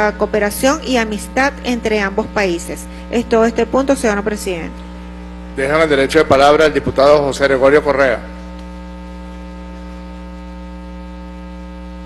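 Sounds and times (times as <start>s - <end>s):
electrical mains hum: 0.0s - 12.0s
man's voice: 5.6s - 8.3s.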